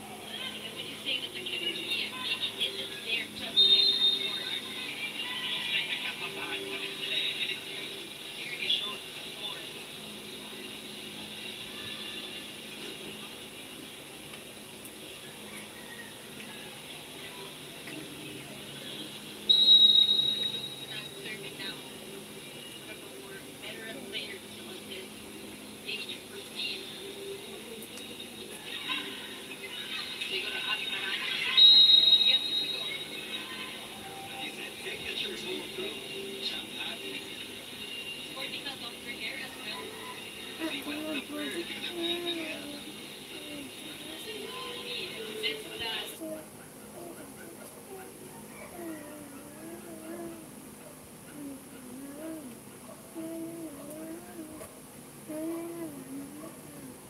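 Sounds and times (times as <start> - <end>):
broadcast commentary: 0.0 - 13.5, 15.8 - 48.2
referee's whistle: 3.6 - 4.3, 19.5 - 20.9, 31.6 - 32.9.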